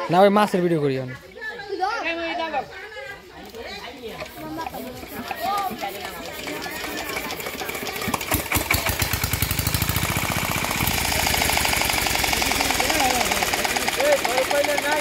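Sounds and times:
small pump engine running: 4.1s - 15.0s.

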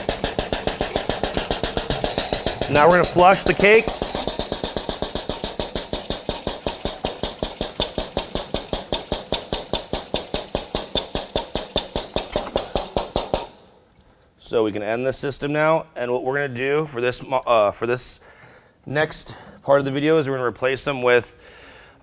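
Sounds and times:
diaphragm pump clattering: 0.0s - 13.6s.

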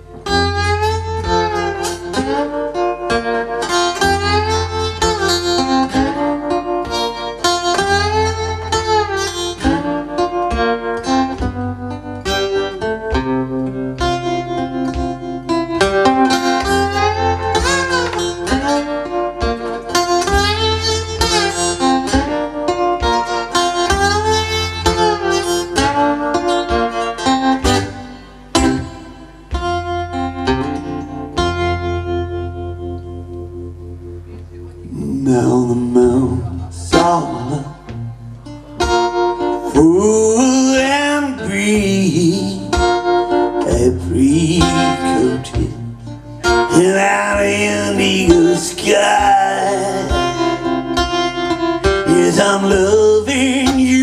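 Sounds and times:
acoustic guitar with sliding notes: 0.0s - 54.0s.

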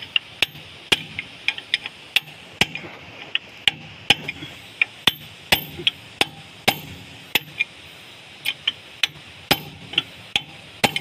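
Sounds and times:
hammer striking steel chisel: 3.6s - 7.7s, 8.5s - 11.0s.

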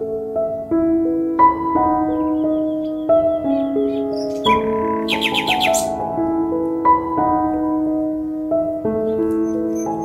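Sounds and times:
held keyboard chords: 0.0s - 10.0s
bird chirps: 1.9s - 6.0s, 9.0s - 10.0s
bird trilling: 2.1s - 6.0s.

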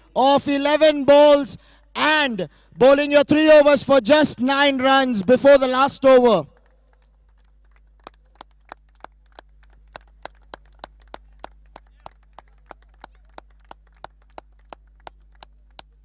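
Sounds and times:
rhythmic hand-clapping: 6.6s - 16.0s.

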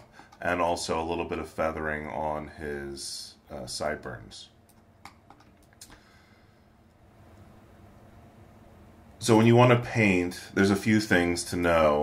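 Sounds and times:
keyboard and mouse clicks: 4.7s - 6.0s.

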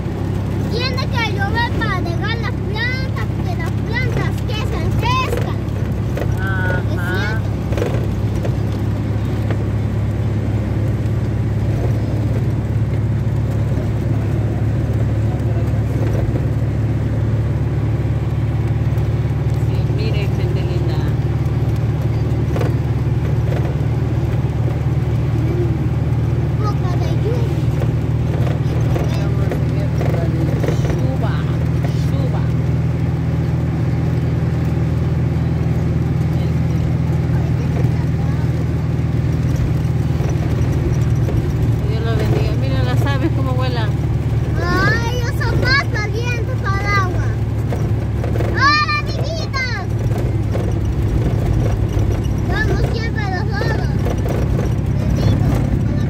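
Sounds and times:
engine running at cruise: 0.0s - 56.0s
road noise: 0.0s - 56.0s.

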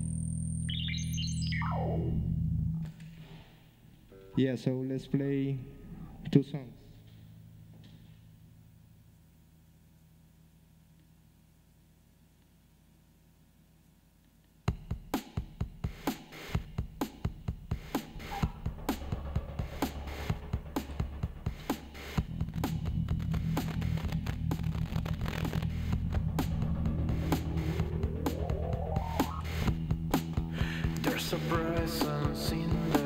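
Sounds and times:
low bass guitar notes: 4.1s - 8.7s, 18.1s - 33.0s
upward sweeping tone: 25.4s - 30.2s.

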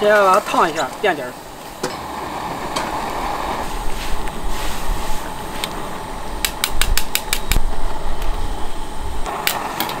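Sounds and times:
gas burner rushing: 0.0s - 10.0s.

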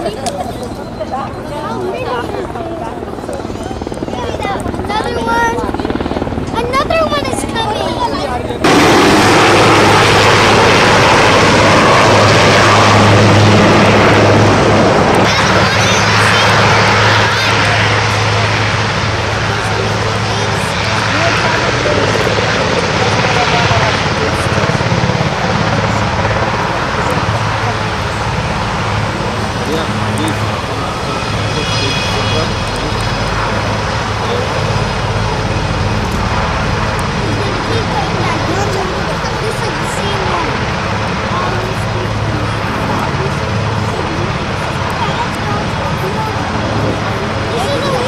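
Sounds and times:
helicopter rotor chopping: 0.0s - 48.0s
people talking: 0.0s - 48.0s.

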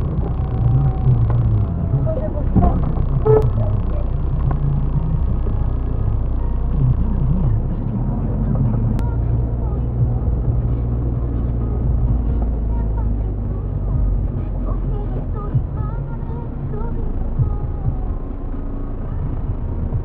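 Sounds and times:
car engine and road rumble: 0.0s - 20.0s
muffled voices: 0.0s - 20.0s.

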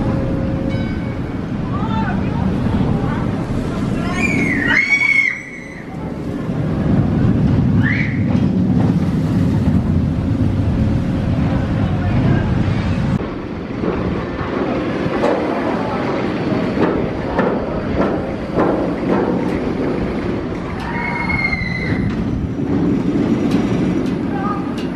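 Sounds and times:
roller coaster rumbling on track: 0.0s - 24.9s
riders screaming: 4.0s - 5.9s, 20.8s - 22.1s.

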